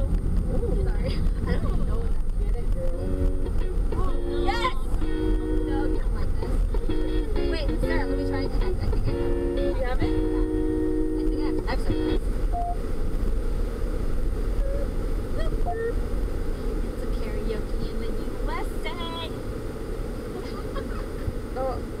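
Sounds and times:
passengers talking: 0:00.0 - 0:12.8, 0:14.4 - 0:22.0
van cabin rumble: 0:00.0 - 0:22.0
people laughing: 0:05.4 - 0:06.8, 0:20.4 - 0:21.3.

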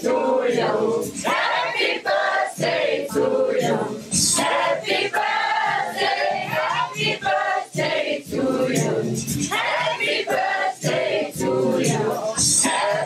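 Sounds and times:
group of voices singing: 0:00.0 - 0:13.0.

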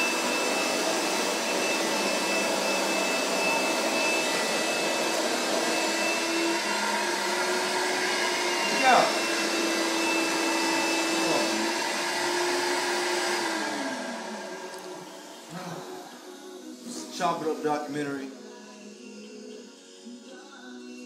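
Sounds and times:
electric motor humming: 0:00.0 - 0:17.0.

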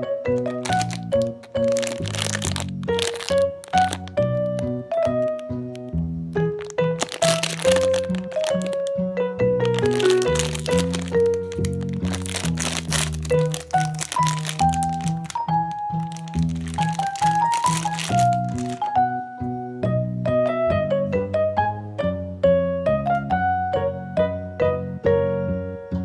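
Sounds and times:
bouncy background music with piano: 0:00.0 - 0:26.0
foil packaging crinkling: 0:00.3 - 0:09.0, 0:09.6 - 0:19.0.

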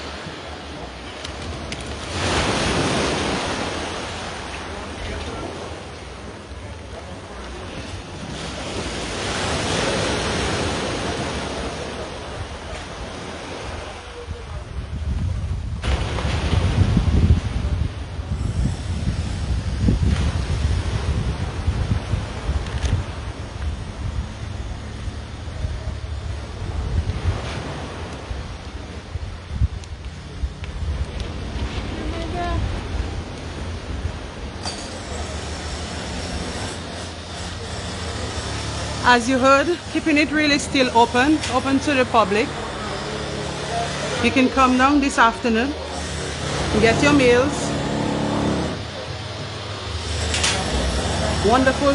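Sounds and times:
surf washing on beach: 0:00.0 - 0:51.9
wind buffeting microphone: 0:12.2 - 0:51.9.

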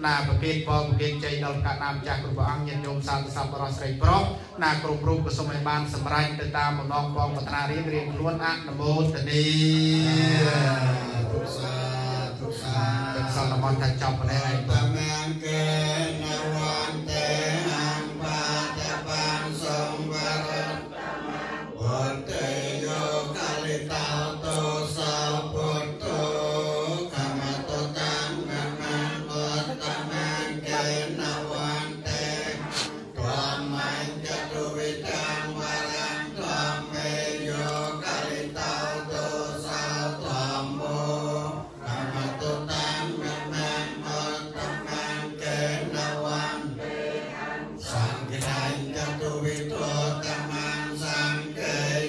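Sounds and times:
voices chanting together: 0:00.0 - 0:52.0.

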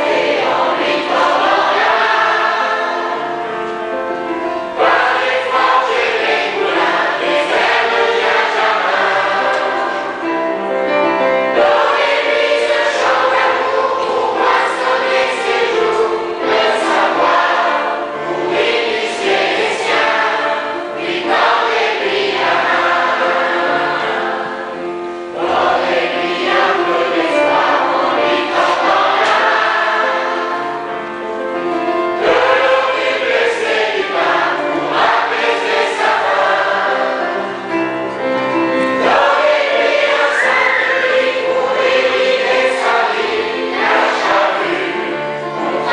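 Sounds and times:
children's choir singing: 0:00.0 - 0:45.9.

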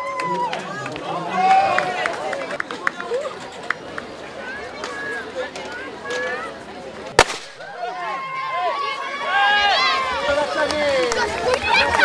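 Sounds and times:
sharp bang: 0:07.2 - 0:07.6
children shouting and cheering: 0:07.6 - 0:12.0.

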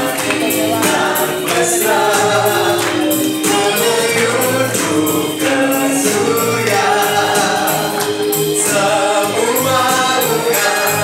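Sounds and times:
choir singing a hymn: 0:00.0 - 0:11.0
instrumental accompaniment: 0:00.0 - 0:11.0.

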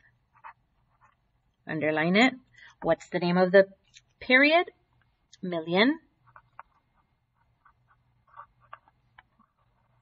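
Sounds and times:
pen scratching on paper: 0:00.3 - 0:01.2, 0:06.2 - 0:10.0.

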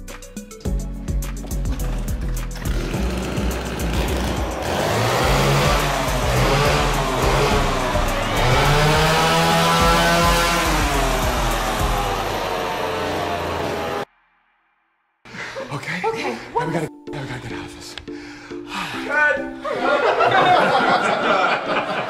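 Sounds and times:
background music with bass: 0:00.0 - 0:14.0
chainsaw engine revving: 0:01.8 - 0:14.1.

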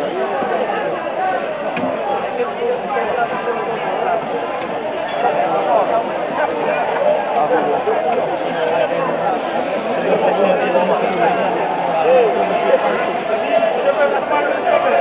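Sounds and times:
overlapping chatter of people: 0:00.0 - 0:15.0.

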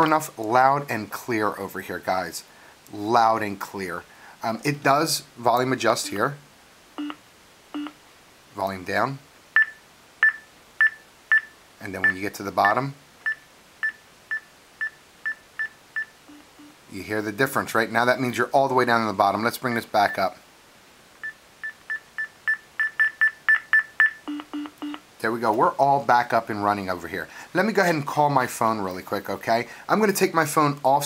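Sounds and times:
short high beeps: 0:21.2 - 0:25.0.

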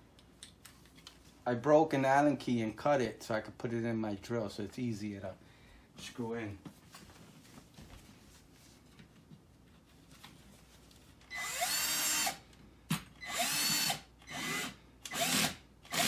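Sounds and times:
cordless drill driving a screw: 0:11.2 - 0:12.4, 0:13.2 - 0:16.0.

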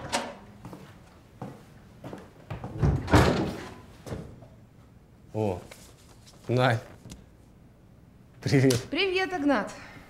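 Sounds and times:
door shutting with a thud: 0:02.7 - 0:04.3.

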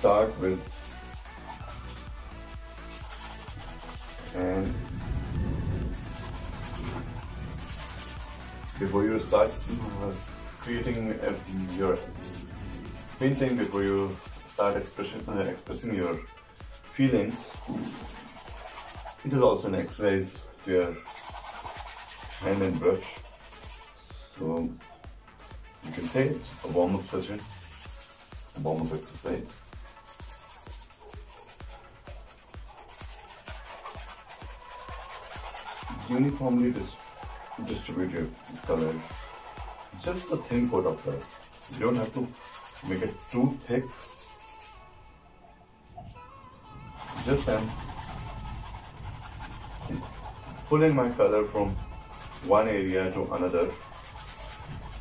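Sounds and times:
paintbrush brushing on canvas: 0:00.0 - 0:20.0, 0:20.9 - 0:24.3, 0:25.8 - 0:44.8, 0:47.0 - 0:55.0
background music with beat: 0:00.0 - 0:45.0, 0:46.0 - 0:55.0.

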